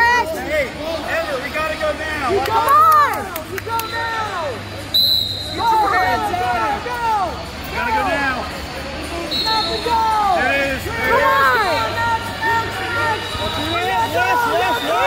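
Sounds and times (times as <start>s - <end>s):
spectators and coaches shouting: 0.0s - 15.0s.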